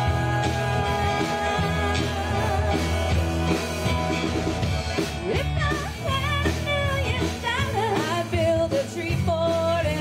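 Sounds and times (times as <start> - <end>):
person singing: 0.0 - 3.3
live band playing: 0.0 - 10.0.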